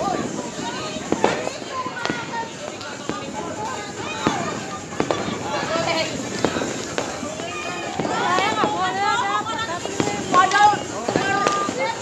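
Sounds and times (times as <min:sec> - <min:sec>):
distant fireworks bangs: 0:00.0 - 0:12.0
hubbub of voices: 0:00.0 - 0:12.0.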